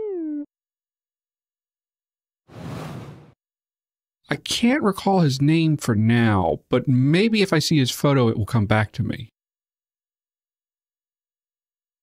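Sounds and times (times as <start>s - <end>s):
whoosh sound effect: 2.5s - 3.4s.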